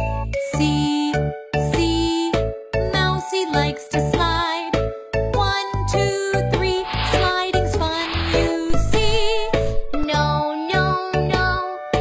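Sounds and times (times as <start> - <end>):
person singing children's song: 0.4 - 4.8, 5.4 - 12.0.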